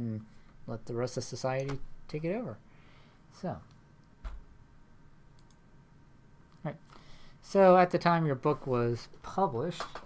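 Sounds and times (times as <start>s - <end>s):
faint computer clicks: 5.3s - 5.6s.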